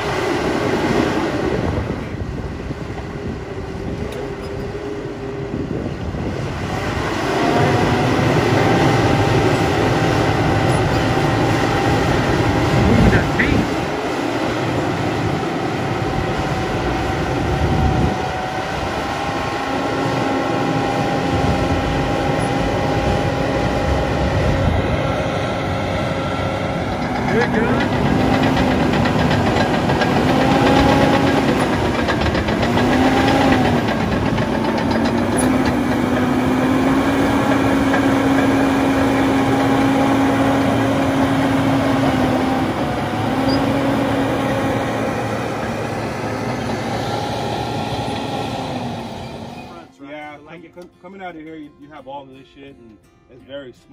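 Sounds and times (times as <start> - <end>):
steel tracks clattering: 0.0 - 21.0, 21.6 - 49.9
high machine whine: 0.0 - 50.1
bulldozer diesel engine drone: 0.0 - 50.7.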